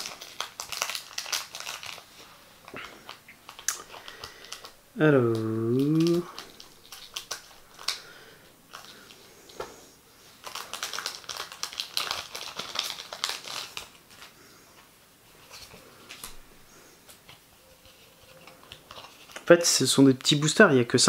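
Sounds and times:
wrapper crinkling and rustling: 0.0s - 9.7s, 10.3s - 21.0s.

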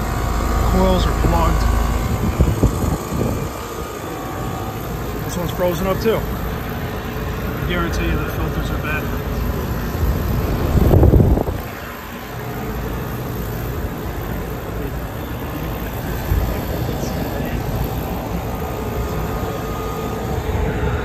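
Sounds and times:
compressor hum: 0.0s - 21.0s
condenser fan blowing: 0.0s - 21.0s.

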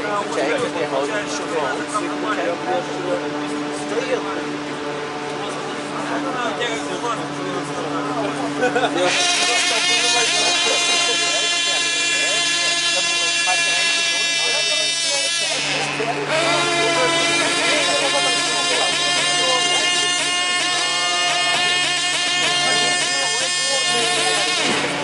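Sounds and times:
model engine high whine: 0.0s - 25.0s.

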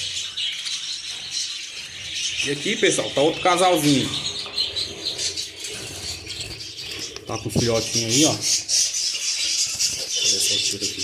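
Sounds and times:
budgerigars chirping: 0.0s - 11.0s.

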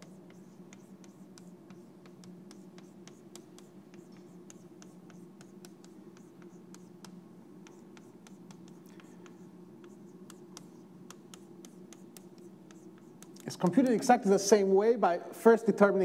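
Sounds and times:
chalk writing on a blackboard: 0.0s - 14.1s
steady low hum: 0.0s - 16.0s.

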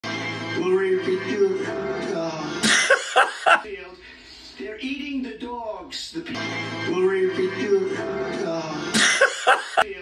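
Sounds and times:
background music: 0.0s - 4.3s, 6.2s - 9.9s.

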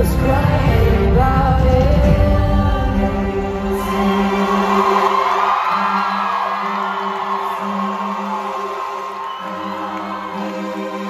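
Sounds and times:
crowd cheering and whooping: 3.5s - 11.0s.

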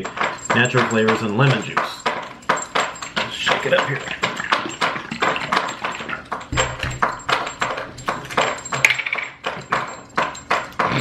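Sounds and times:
collar clinking: 0.0s - 11.0s
dog lapping water: 4.0s - 8.4s.

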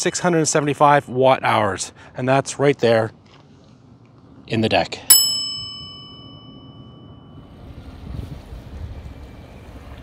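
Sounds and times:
small bell ringing: 5.1s - 7.6s
wind rumbling on microphone: 7.4s - 10.0s.

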